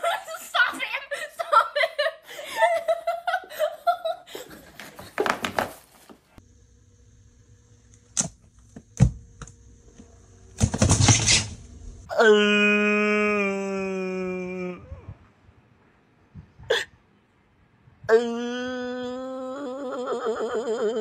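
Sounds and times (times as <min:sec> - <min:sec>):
person laughing: 0:00.0 - 0:05.5
rustling noise: 0:04.5 - 0:06.4.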